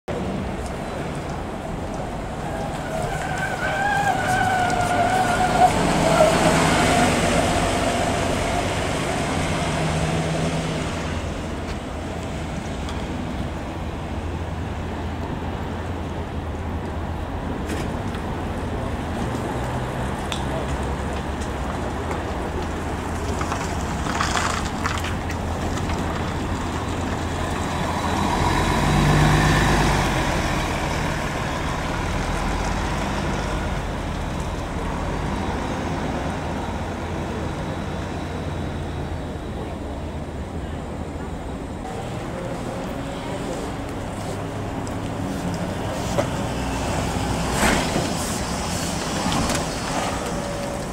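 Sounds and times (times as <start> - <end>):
diesel buses passing: 0.1 - 50.9.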